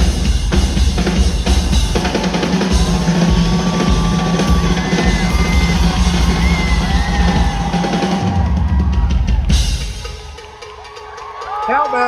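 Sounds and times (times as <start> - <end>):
rock drum solo: 0.0 - 12.0.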